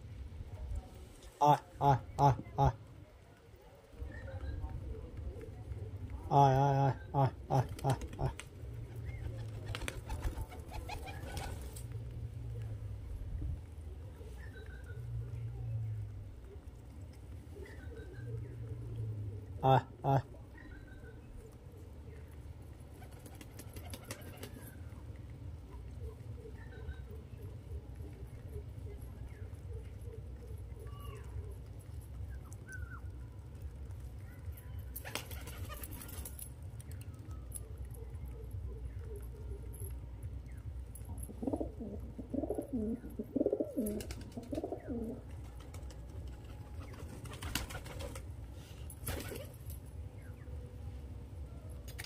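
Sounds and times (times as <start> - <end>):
pigeons cooing: 4.0 - 11.9, 16.2 - 22.2, 22.8 - 24.8, 37.3 - 50.4
beaks tapping on concrete: 7.0 - 12.8, 20.6 - 50.4
pigeon wings flapping: 7.6 - 11.8, 22.9 - 24.8, 35.0 - 36.5, 43.7 - 49.8.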